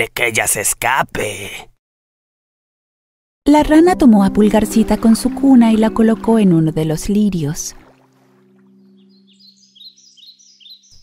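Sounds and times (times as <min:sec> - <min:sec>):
birds chirping: 0:04.8 - 0:11.0.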